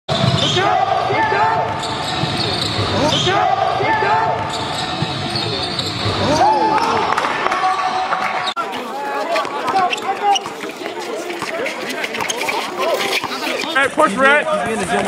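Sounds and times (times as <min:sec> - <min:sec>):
sneakers squeaking: 0:00.1 - 0:07.0, 0:07.7 - 0:14.2.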